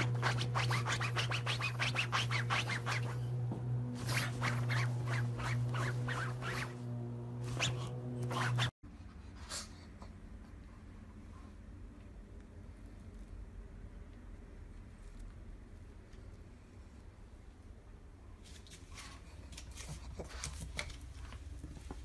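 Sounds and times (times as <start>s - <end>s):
dog paws scratching fabric cushion: 0.0s - 8.8s
steady low hum: 0.0s - 18.4s.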